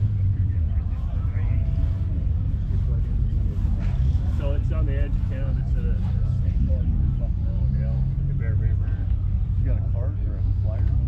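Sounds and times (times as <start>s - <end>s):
low rumble: 0.0s - 11.0s
people talking: 0.0s - 11.0s.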